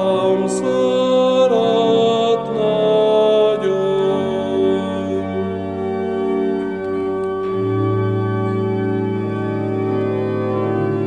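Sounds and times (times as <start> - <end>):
man singing a hymn: 0.0 - 5.6
sustained organ: 0.0 - 11.0.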